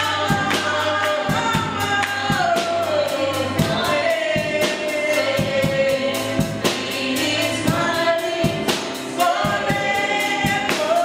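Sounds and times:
bass line: 0.0 - 11.0
drum kit beat: 0.0 - 11.0.

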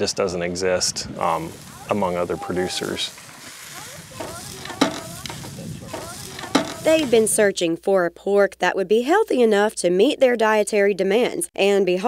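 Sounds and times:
meat sizzling on a grill: 0.8 - 7.5
metal tongs clicking on grate: 4.2 - 6.8.

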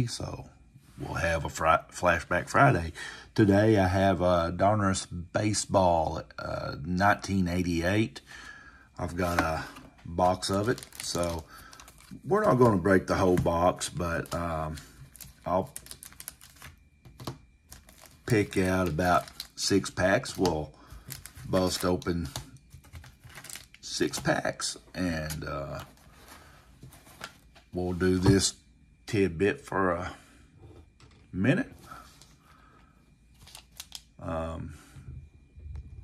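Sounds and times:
light clicks of card packs: 9.2 - 16.7, 17.7 - 24.4.

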